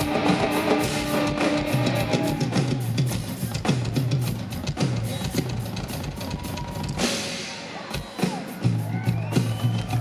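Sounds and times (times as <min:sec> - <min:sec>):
rock drum kit playing fast: 0:00.0 - 0:10.0.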